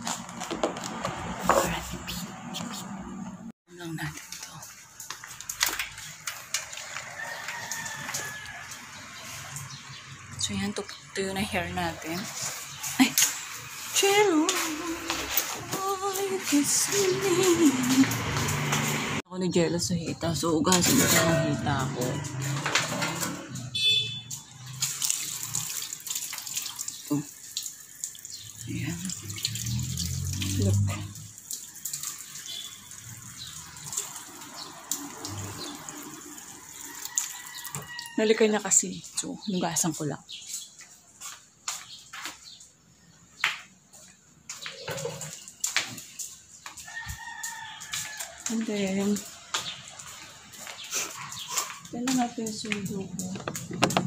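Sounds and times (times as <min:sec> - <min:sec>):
tap water splashing into sink: 0:24.7 - 0:36.2.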